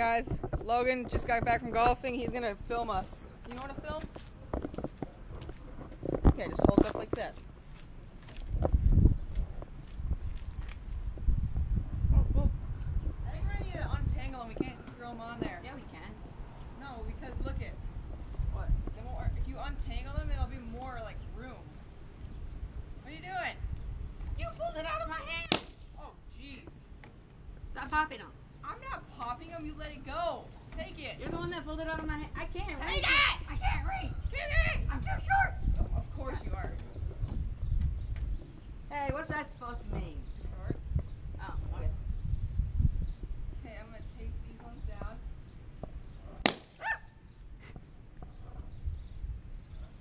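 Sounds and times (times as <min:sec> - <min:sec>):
voices: 0:00.0 - 0:05.6, 0:06.2 - 0:07.5, 0:13.2 - 0:22.0, 0:22.9 - 0:23.7, 0:24.3 - 0:27.0, 0:27.6 - 0:37.4, 0:38.7 - 0:42.1, 0:43.5 - 0:45.3
wind rumble on microphone: 0:00.0 - 0:07.4, 0:08.4 - 0:25.4, 0:29.6 - 0:46.5, 0:48.0 - 0:50.0.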